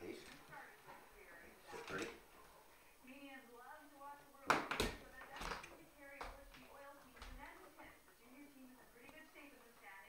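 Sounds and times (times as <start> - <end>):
quiet background talking: 0.0 - 10.0.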